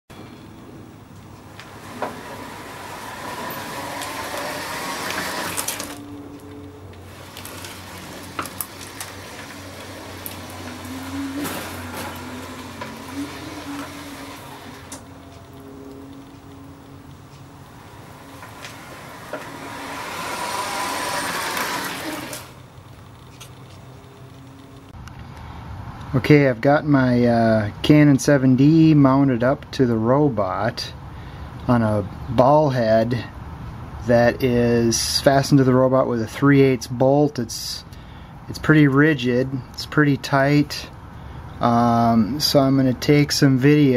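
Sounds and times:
robot motors humming: 1.2 - 25.0.

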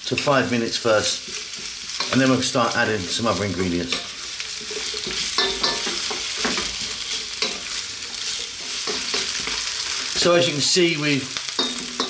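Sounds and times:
wooden spatula scraping a pan: 0.0 - 10.4
onions sizzling in hot oil: 0.0 - 12.0.

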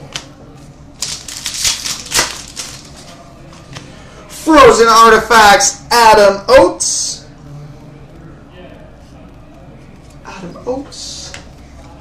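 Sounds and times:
trading cards rustling and clicking: 1.0 - 3.2.

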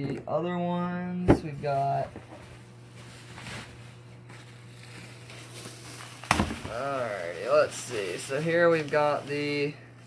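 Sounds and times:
steady low hum: 0.0 - 10.0
bubble wrap crinkling: 1.8 - 10.0.

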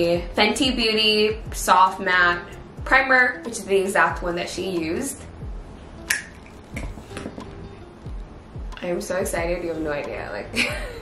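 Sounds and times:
background music with a beat: 0.0 - 1.8, 2.5 - 11.0
sharp click: 6.1 - 6.9.

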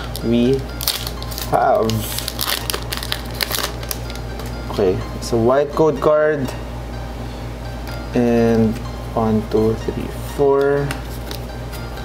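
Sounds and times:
foil wrapper tearing and crinkling: 0.8 - 4.1.

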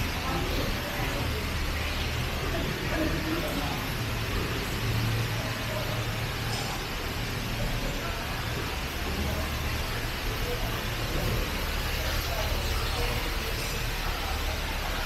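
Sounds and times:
faint indistinct voices: 0.0 - 15.0.

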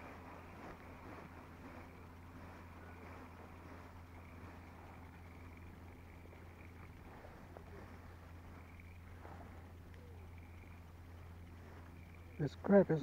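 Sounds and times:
faint ticks: 0.0 - 13.0
outboard motor humming: 0.0 - 13.0.

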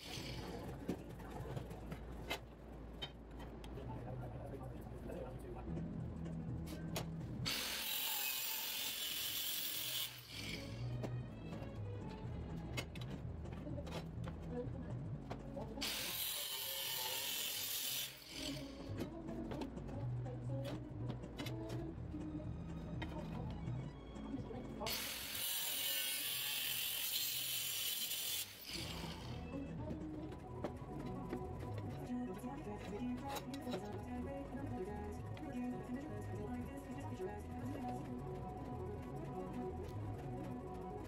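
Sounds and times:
angle grinder cutting steel: 0.0 - 0.5, 7.5 - 10.9, 15.8 - 18.9, 24.9 - 29.5.

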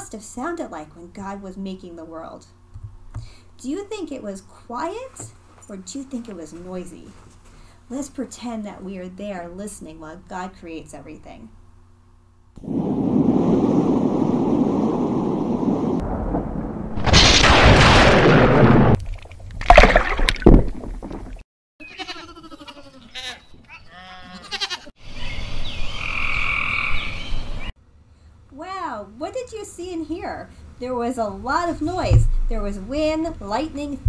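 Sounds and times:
lightning cracks: 12.6 - 19.0
wind rushing: 12.6 - 19.0
thunder: 12.7 - 19.0
animal calls: 21.8 - 27.2.

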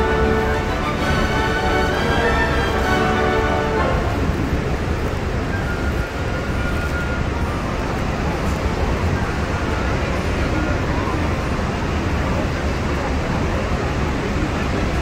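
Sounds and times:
waterfall roaring: 0.0 - 15.0.

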